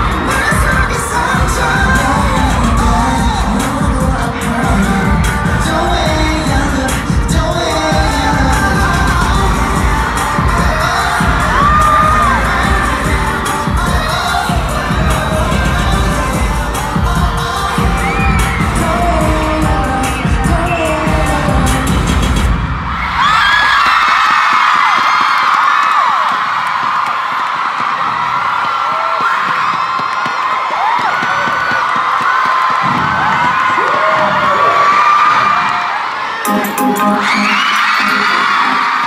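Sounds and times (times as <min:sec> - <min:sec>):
crowd screaming and cheering: 0:00.0 - 0:39.0
loud pop music with heavy beat: 0:00.0 - 0:39.0.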